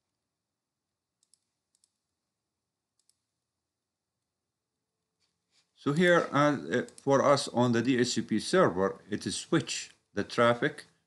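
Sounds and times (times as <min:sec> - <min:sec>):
computer mouse clicks: 0:01.2 - 0:02.1, 0:03.0 - 0:03.3, 0:06.8 - 0:07.1.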